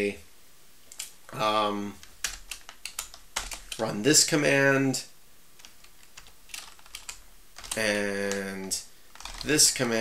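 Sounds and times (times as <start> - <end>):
keyboard keystrokes: 2.0 - 3.8, 5.6 - 8.5.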